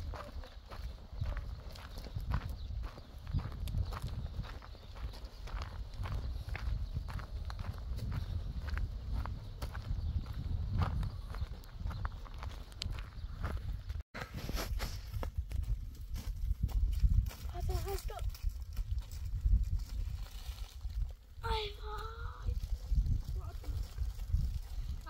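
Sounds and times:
footsteps on stony dirt: 0.0s - 21.0s
wind rumble on microphone: 0.0s - 25.0s
child's voice: 17.5s - 18.3s, 21.4s - 22.6s, 23.3s - 23.8s.

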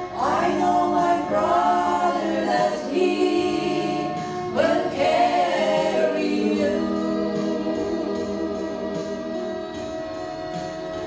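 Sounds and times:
women singing gospel in harmony: 0.0s - 11.0s.

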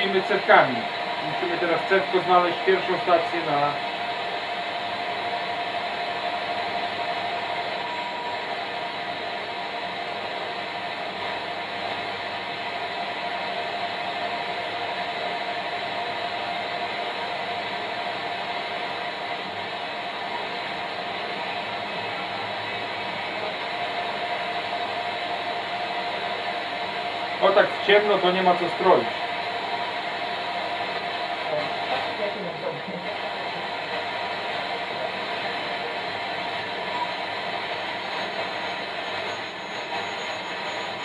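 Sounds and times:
faint steady whistle: 37.9s - 41.0s.

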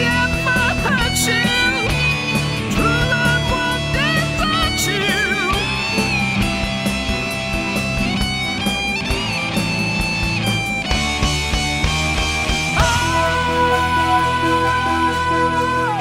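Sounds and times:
steady drum beat: 0.0s - 15.8s
bass: 0.0s - 16.0s
electric guitar lead line: 0.0s - 16.0s.

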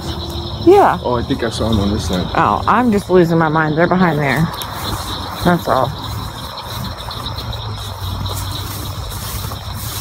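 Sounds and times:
night insects trilling: 0.0s - 10.0s.

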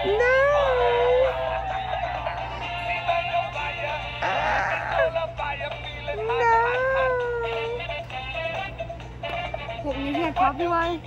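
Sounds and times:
toy playing sung tune: 0.0s - 10.5s.

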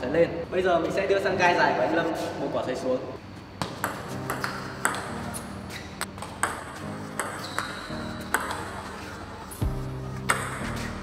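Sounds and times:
background music: 3.8s - 11.0s.

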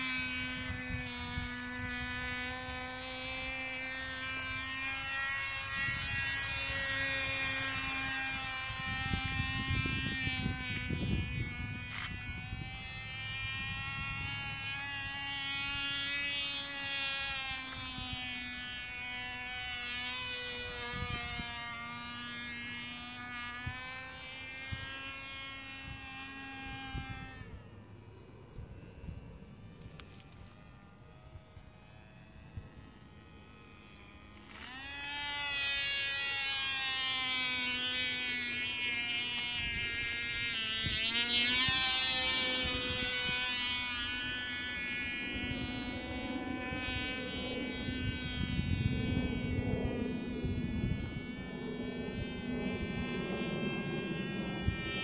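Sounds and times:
model airplane engine buzzing: 0.0s - 55.0s.

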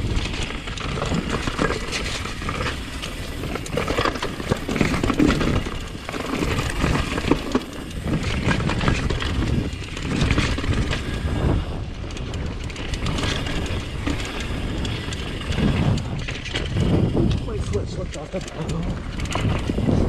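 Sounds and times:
bike clattering over bumps: 0.0s - 20.0s
bike tyres crunching over dirt: 0.0s - 20.0s
wind noise: 0.0s - 20.0s.

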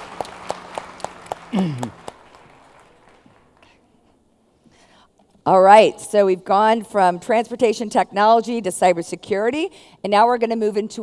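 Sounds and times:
hand claps: 0.0s - 3.8s.

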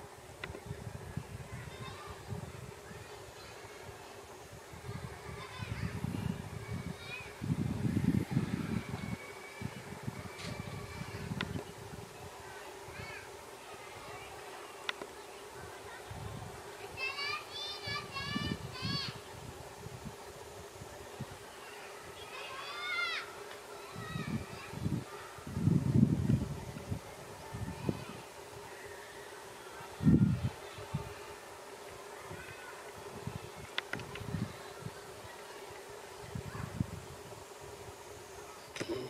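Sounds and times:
faint steady hum: 0.0s - 39.0s
children calling out: 21.5s - 25.5s.

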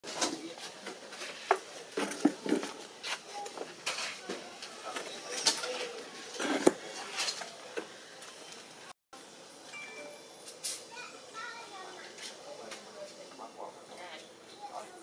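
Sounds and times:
faint voices: 0.1s - 9.6s.

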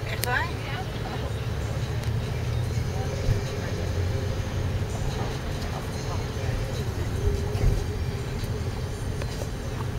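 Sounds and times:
vehicle rumble: 0.0s - 9.9s.

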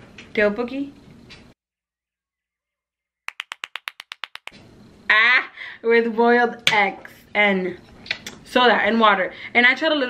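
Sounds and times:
sharp clicks or claps: 3.3s - 4.6s.

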